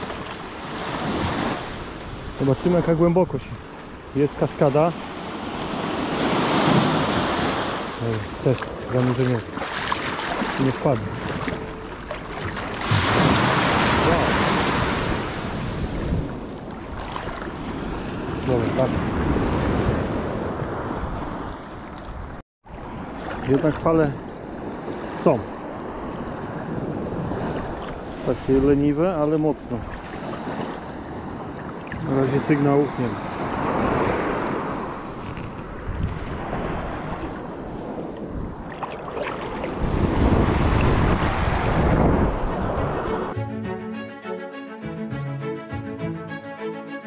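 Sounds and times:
water sloshing around wader: 0:05.0 - 0:18.8, 0:21.8 - 0:25.9, 0:27.4 - 0:28.2, 0:29.6 - 0:32.2, 0:33.9 - 0:41.0
wind noise on microphone: 0:33.4 - 0:43.4
background music: 0:42.6 - 0:47.0.

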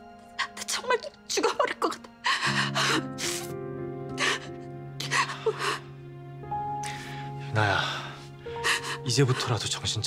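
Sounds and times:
background music low notes: 0:00.0 - 0:10.0
woman crying: 0:01.3 - 0:05.9.

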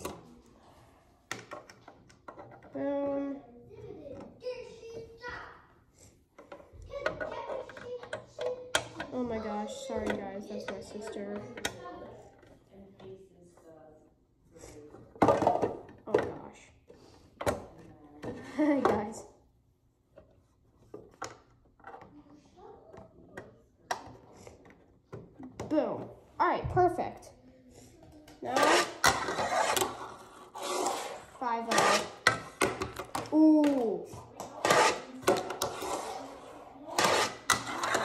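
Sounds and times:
plastic parts knocking on wooden table: 0:01.3 - 0:02.8, 0:31.7 - 0:36.0
child talking: 0:02.7 - 0:05.7, 0:06.7 - 0:12.3, 0:25.7 - 0:29.0, 0:31.4 - 0:32.1, 0:33.3 - 0:37.1.

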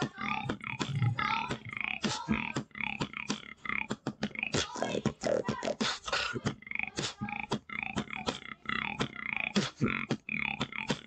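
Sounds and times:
beatboxing: 0:00.0 - 0:11.0.

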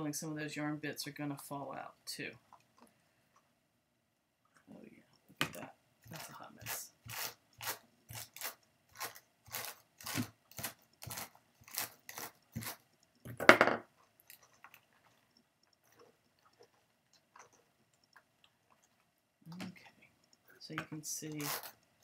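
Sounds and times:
brush scratching over wool: 0:06.1 - 0:12.9, 0:21.2 - 0:21.8.

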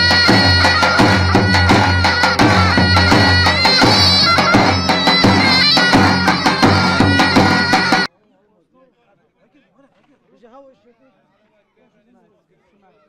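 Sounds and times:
large drum beaten in steady rhythm: 0:00.0 - 0:08.1
shawm melody: 0:00.0 - 0:08.1.

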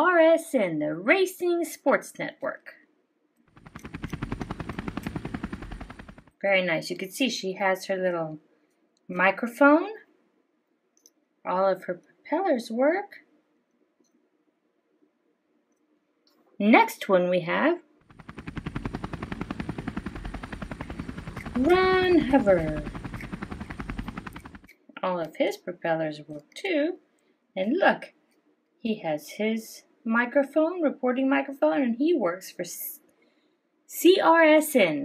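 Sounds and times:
helicopter rotor chopping: 0:03.5 - 0:06.4, 0:18.1 - 0:24.7.

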